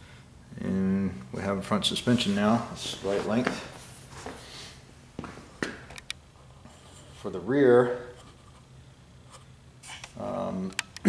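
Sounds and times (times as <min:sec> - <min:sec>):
soft scuffs and clicks: 0:02.1 - 0:07.4.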